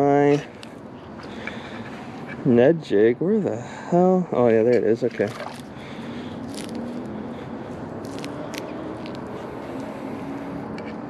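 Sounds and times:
distant engine humming: 0.0 - 11.0
wet weeds being pulled: 5.0 - 7.2, 8.0 - 9.9.

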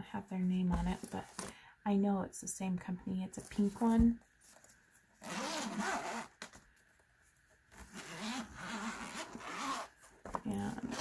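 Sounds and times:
zipper being unzipped: 5.2 - 6.3, 7.8 - 9.9, 10.7 - 11.0.

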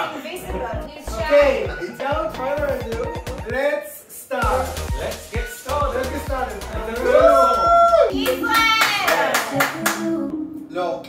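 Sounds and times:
group whooping vocal note: 7.0 - 10.3
people clapping: 7.2 - 10.1.

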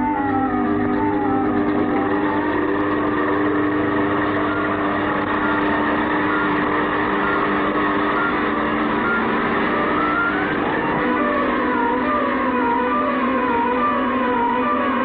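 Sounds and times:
electronic machine hum: 0.0 - 15.0
rising and falling whine: 0.0 - 15.0.

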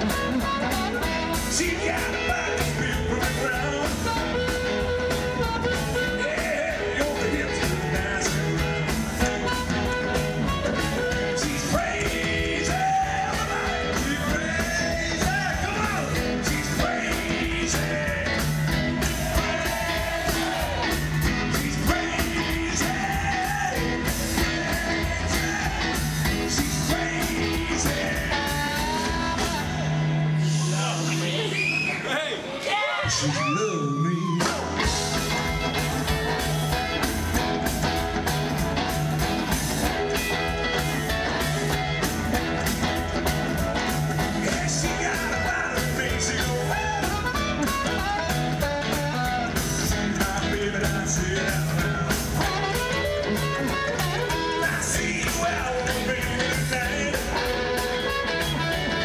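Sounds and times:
electric guitar: 0.0 - 32.0, 33.0 - 59.0
amplified harmonica: 0.0 - 32.1, 34.8 - 50.4, 51.5 - 59.0
upright bass: 0.0 - 32.2, 34.2 - 59.0
drums: 0.0 - 59.0
person singing: 0.4 - 31.6, 43.9 - 59.0.

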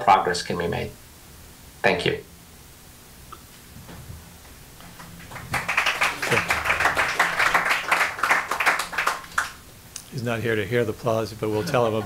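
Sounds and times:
small audience applauding: 4.8 - 9.7.

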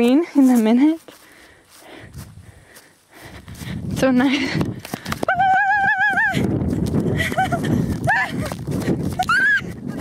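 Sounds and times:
running jostle: 0.5 - 10.0
wind on microphone: 2.0 - 10.0
woman laughing yelps: 5.3 - 6.5, 7.2 - 8.5, 9.2 - 10.0
woman squealing: 5.3 - 6.5, 9.2 - 9.8.

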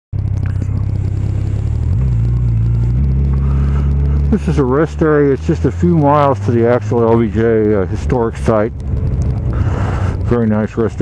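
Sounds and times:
motorcycle engine running: 0.2 - 11.0.

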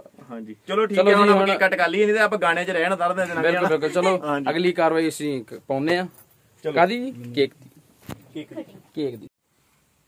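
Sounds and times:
man speaking: 0.0 - 9.3.

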